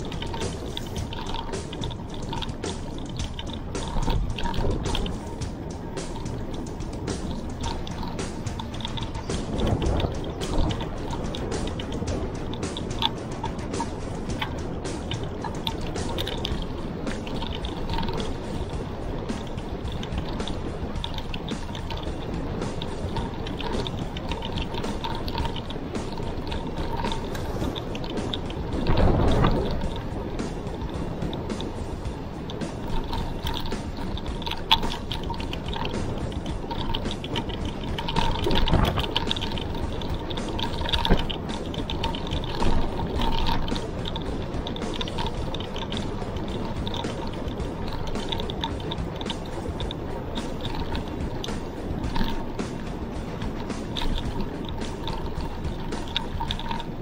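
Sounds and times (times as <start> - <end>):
bike clicking and rattling: 0.0 - 57.0
bike tyres on concrete road: 0.0 - 57.0
gusts of wind: 0.0 - 57.0
wind noise: 0.0 - 57.0.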